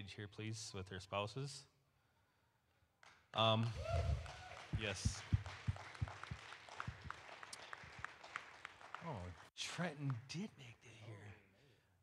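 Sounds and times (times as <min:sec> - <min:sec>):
faint scattered applause: 0:03.0 - 0:10.5.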